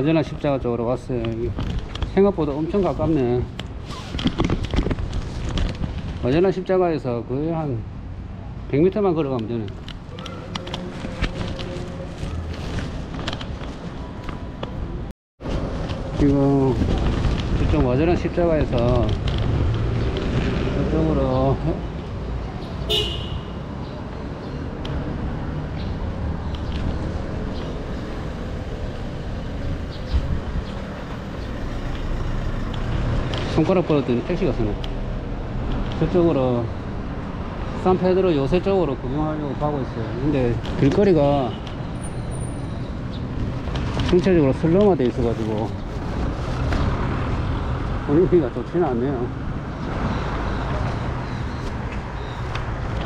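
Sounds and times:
street noise: 0:00.0 - 0:53.0
wind rumbling on microphone: 0:01.3 - 0:06.6, 0:09.7 - 0:21.0, 0:25.2 - 0:33.5
car horn honk: 0:22.9 - 0:23.6.

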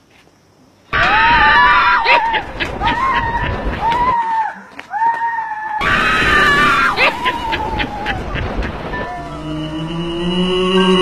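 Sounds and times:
high-pitched screaming: 0:05.2 - 0:11.0
noisy burst: 0:05.9 - 0:11.0
background music: 0:09.0 - 0:11.0.

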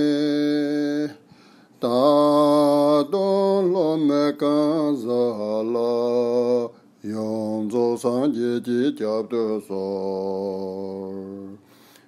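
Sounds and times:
person chanting: 0:01.8 - 0:11.6.

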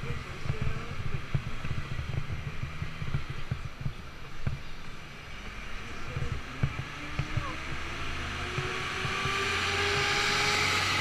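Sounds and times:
bicycle rolling on pavement: 0:00.0 - 0:10.3.

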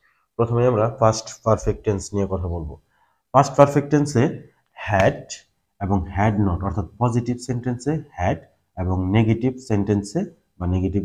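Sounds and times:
man talking: 0:00.4 - 0:11.0.

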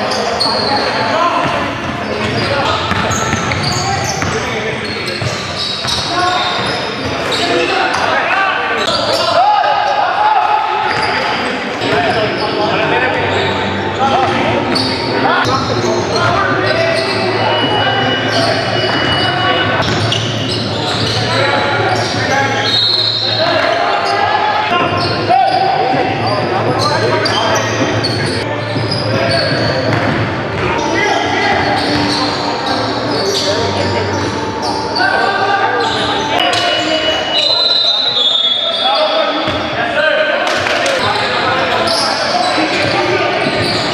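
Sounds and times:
players calling out: 0:00.0 - 0:43.9.

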